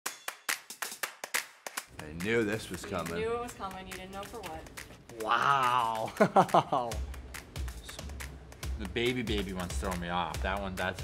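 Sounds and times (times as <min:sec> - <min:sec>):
sharp clap-like hits: 0:00.0 - 0:03.2.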